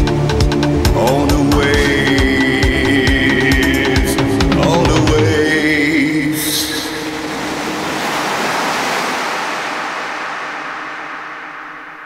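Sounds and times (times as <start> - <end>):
ocean surf rushing wash: 5.5 - 12.0.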